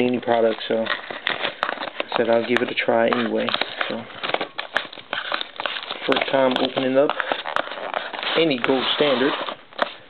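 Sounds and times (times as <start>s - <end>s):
card boxes rustling: 0.0s - 10.0s.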